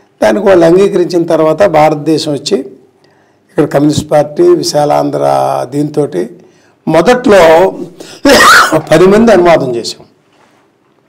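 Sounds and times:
man speaking: 0.2 - 2.8, 3.5 - 10.1.

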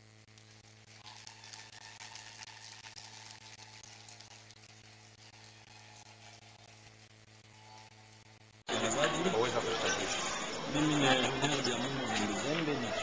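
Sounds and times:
low electrical hum: 0.0 - 13.0
faint applause: 8.8 - 13.0.

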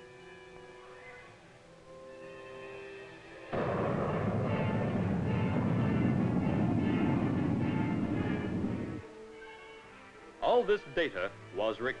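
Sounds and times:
rocket booster roaring: 3.5 - 9.0.

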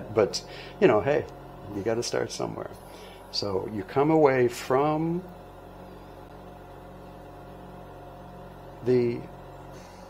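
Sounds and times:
torch burning with low hum: 0.0 - 10.0.

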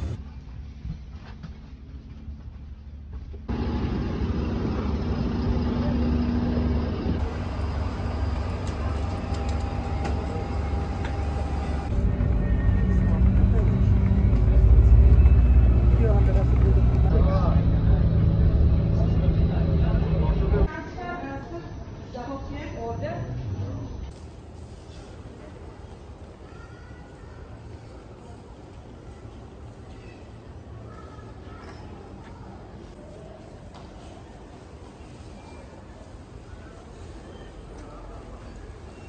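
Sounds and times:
low vehicle rumble: 0.0 - 20.7.

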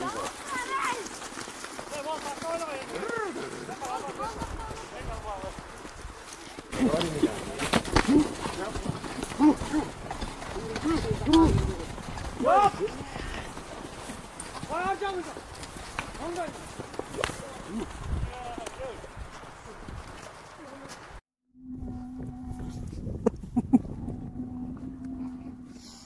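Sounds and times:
men shouting: 6.7 - 13.4
cow mooing: 21.6 - 23.0, 24.0 - 26.0.

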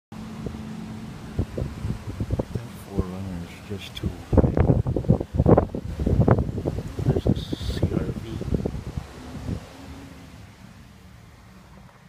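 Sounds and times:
wind buffeting microphone: 0.2 - 10.9.

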